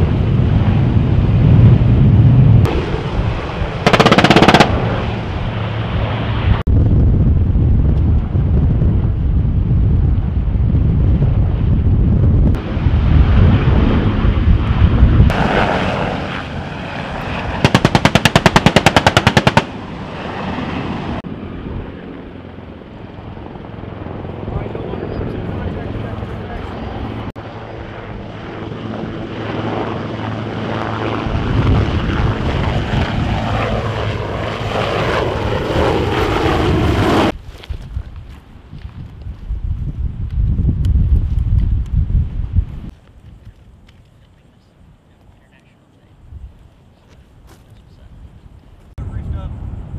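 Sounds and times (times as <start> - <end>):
helicopter rotor rumble: 0.0 - 37.4, 39.6 - 49.9
automatic gunfire: 3.9 - 5.0, 17.6 - 19.8.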